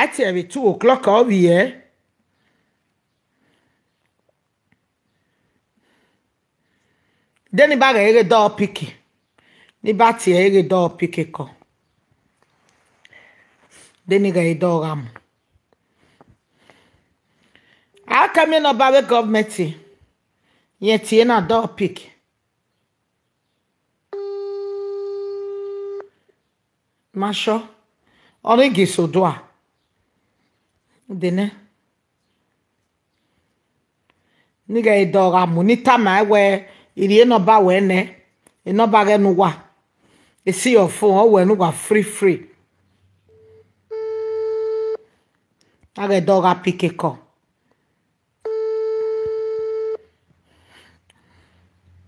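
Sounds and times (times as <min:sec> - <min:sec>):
steady low telephone beep: 0:24.1 - 0:26.1, 0:43.3 - 0:45.1, 0:48.5 - 0:50.1.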